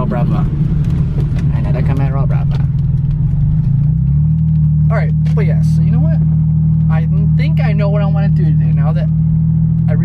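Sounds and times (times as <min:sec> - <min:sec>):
car engine drone inside cabin: 0:00.0 - 0:10.0.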